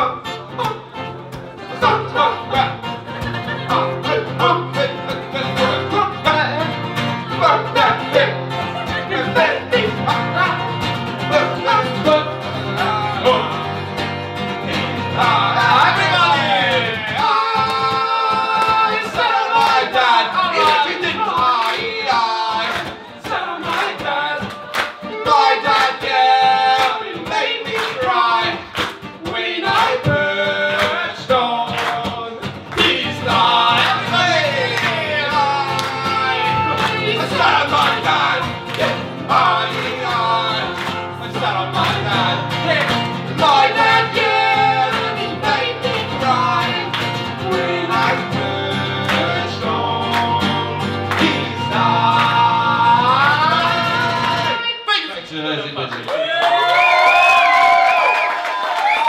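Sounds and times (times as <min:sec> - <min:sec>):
acoustic guitar strumming: 0:00.0 - 0:54.8
energetic singing voices: 0:00.0 - 0:54.8.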